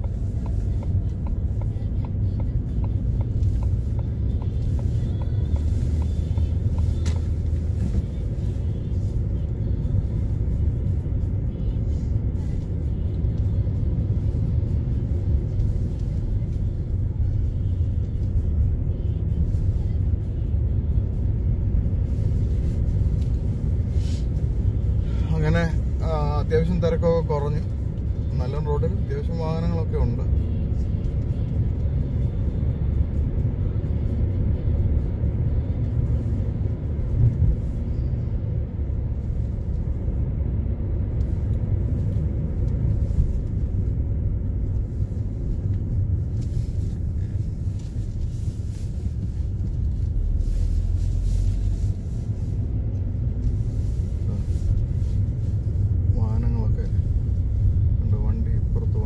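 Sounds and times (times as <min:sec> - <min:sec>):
car engine rumble: 0:00.0 - 0:59.0
road noise: 0:00.0 - 0:59.0.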